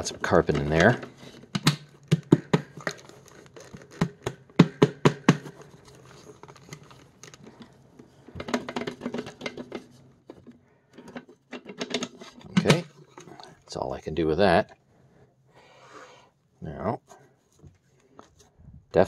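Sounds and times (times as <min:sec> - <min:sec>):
hand tapping plastic bin: 0:03.9 - 0:05.6.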